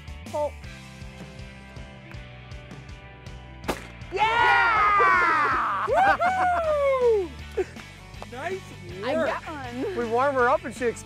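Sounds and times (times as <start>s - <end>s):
background music: 0.0s - 11.0s
shotgun shot: 3.7s - 4.0s.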